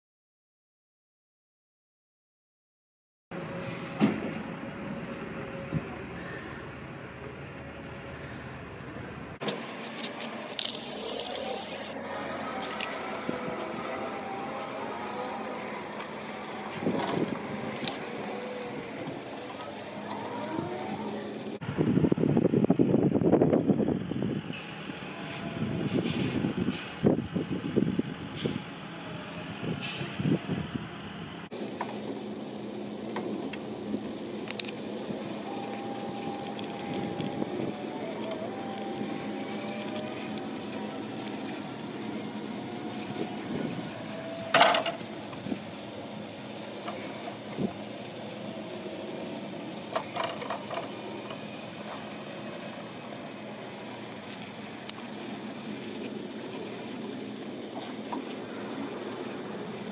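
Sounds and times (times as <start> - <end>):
hydraulic lift whine: 3.4 - 23.2, 34.6 - 53.8
electric forklift driving: 3.4 - 59.9.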